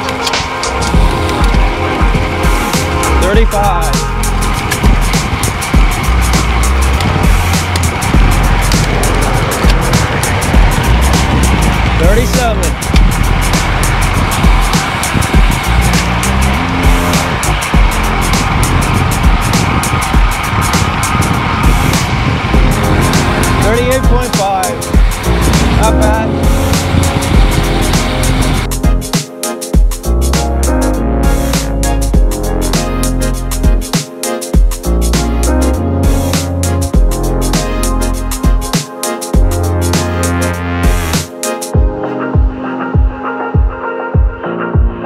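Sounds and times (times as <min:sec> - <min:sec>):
wind buffeting microphone: 0:00.0 - 0:29.1.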